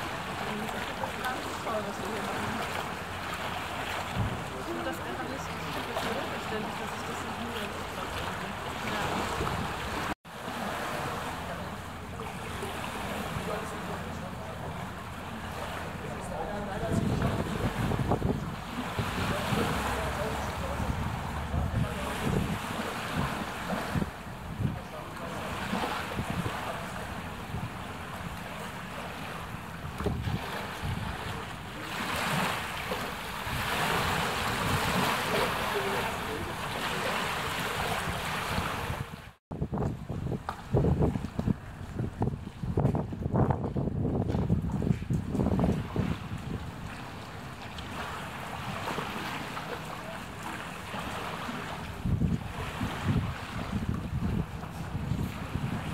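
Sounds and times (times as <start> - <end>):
wind buffeting microphone: 0.0 - 10.2, 11.5 - 49.3, 50.0 - 55.9
floodwater lapping: 0.0 - 55.9.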